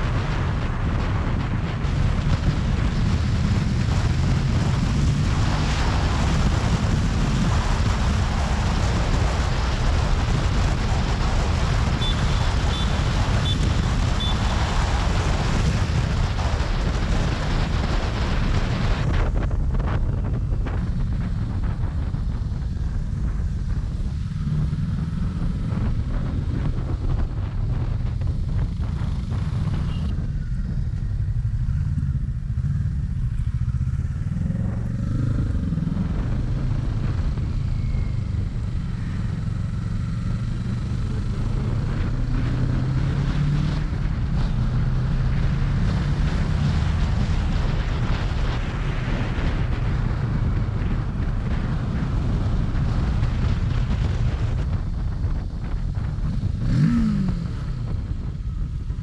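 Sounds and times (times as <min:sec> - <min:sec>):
motorcycle engine: 0:00.0 - 0:59.0
wind rushing over microphone: 0:00.0 - 0:59.0.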